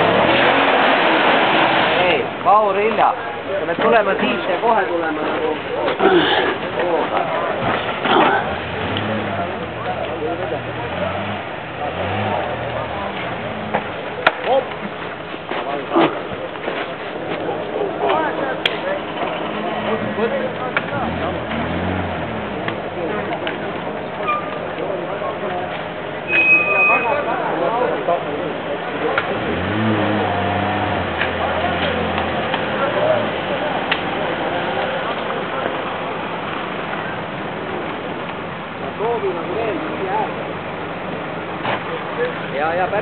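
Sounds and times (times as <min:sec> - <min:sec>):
truck engine revving in mud: 0:00.0 - 0:02.5, 0:05.6 - 0:15.2, 0:17.6 - 0:27.0, 0:27.6 - 0:42.5.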